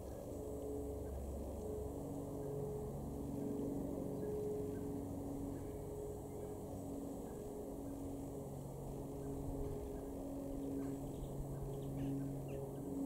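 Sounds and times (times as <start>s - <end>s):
long overlapping steady tones: 0.0s - 13.0s
low motor hum: 0.0s - 13.0s.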